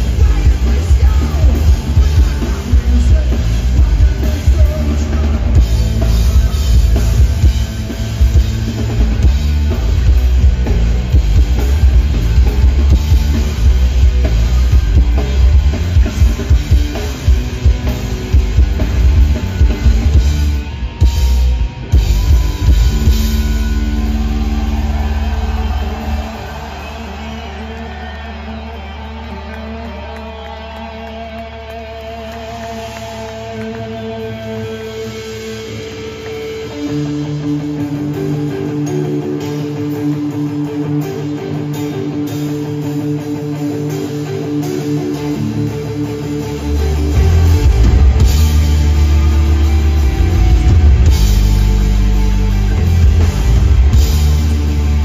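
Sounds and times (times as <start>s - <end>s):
punk rock band playing live: 0.0s - 55.0s.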